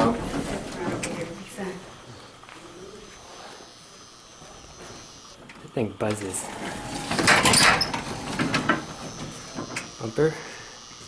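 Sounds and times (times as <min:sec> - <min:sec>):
high-pitched elevator buzz: 0:01.0 - 0:05.4, 0:06.3 - 0:11.0.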